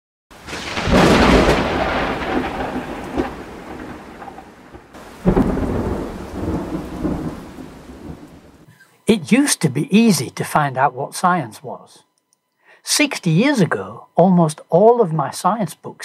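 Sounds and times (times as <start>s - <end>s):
rain hissing: 0.3s - 10.2s
thunder rolling: 0.4s - 8.7s.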